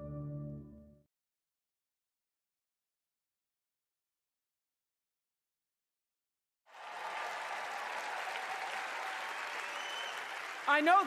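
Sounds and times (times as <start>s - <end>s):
large crowd applauding: 6.7s - 11.0s.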